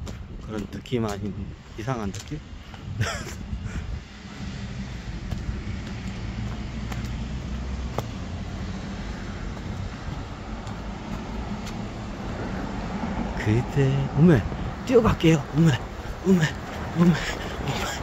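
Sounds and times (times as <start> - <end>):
road traffic rumble: 0.0 - 18.0.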